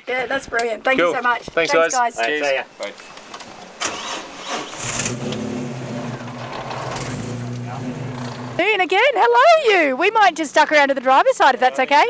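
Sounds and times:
car engine cranking and idling: 3.4s - 8.8s.

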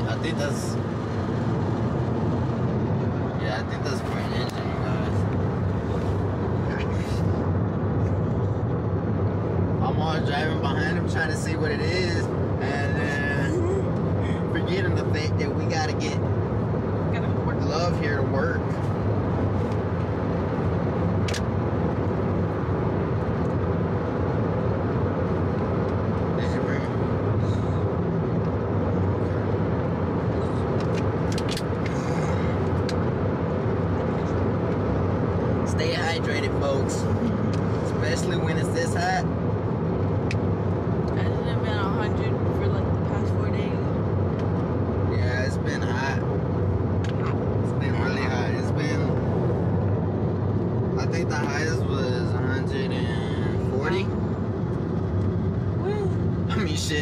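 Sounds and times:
car road and engine noise: 0.0s - 57.0s.

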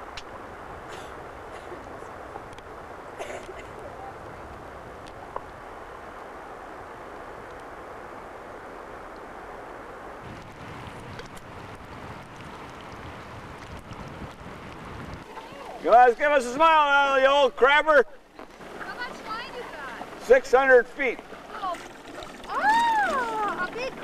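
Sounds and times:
wind on microphone: 0.0s - 8.4s, 10.1s - 15.8s.

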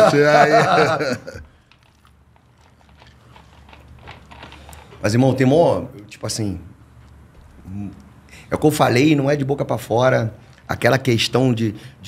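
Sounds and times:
plastic bottle crackling: 1.4s - 5.0s
screw cap turning: 1.7s - 5.0s.

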